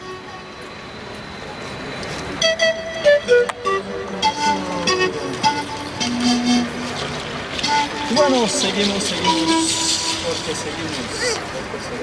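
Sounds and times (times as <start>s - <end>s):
passing tram: 0.0s - 12.0s
panpipe playing: 2.3s - 11.0s.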